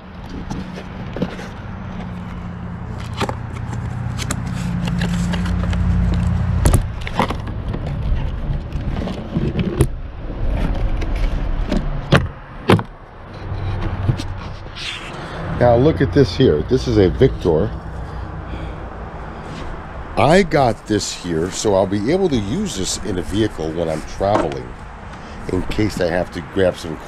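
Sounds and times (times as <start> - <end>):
objects scraping on wood: 0.4 - 6.4, 13.2 - 15.3, 22.4 - 26.2
sharp knocks and clicks: 10.6 - 14.6.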